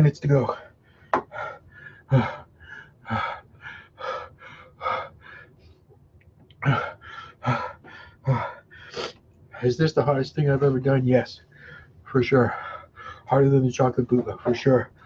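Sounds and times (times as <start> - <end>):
man panting and gasping: 0.6 - 5.8, 6.6 - 9.7, 11.5 - 13.3.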